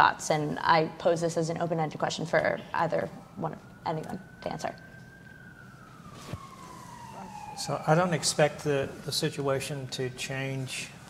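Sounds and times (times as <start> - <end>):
distant siren wailing: 0.0 - 11.0.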